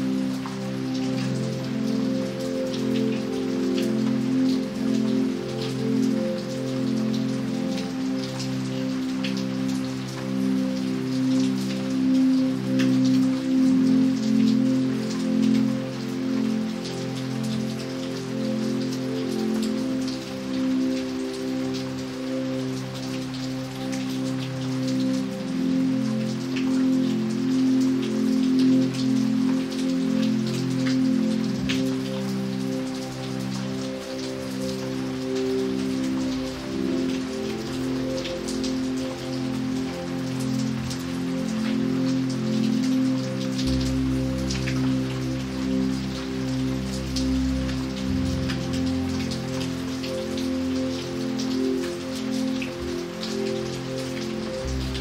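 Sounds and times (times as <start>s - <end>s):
rain on pavement: 0.0s - 55.0s
soft slow music: 0.0s - 55.0s.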